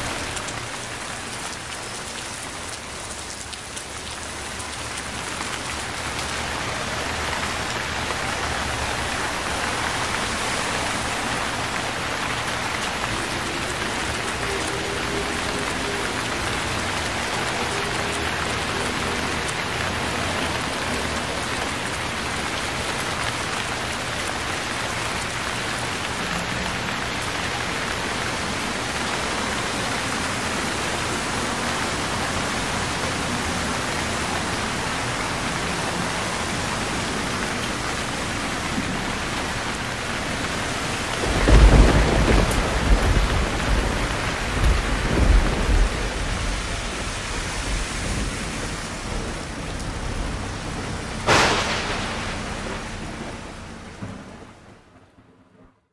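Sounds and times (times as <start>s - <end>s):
heavy rain on wet street: 0.0s - 55.9s
thunder rumbling: 6.6s - 22.8s, 40.2s - 55.6s.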